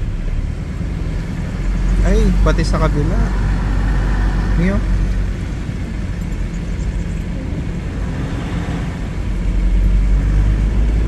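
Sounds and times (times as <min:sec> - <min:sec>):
vehicle rumble inside cabin: 0:00.0 - 0:11.0.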